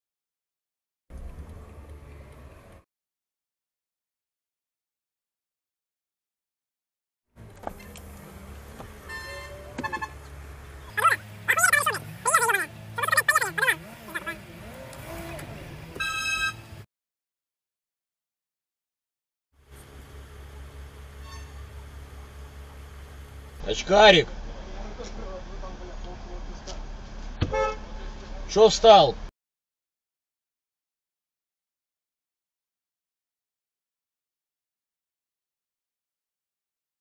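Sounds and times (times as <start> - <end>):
car idling hum: 7.4 - 16.8, 19.6 - 29.2
car horn toot: 9.0 - 10.3, 15.9 - 16.8, 21.2 - 21.7, 27.4 - 28.0
loud speech: 10.9 - 14.5
short high tones: 16.0 - 16.8.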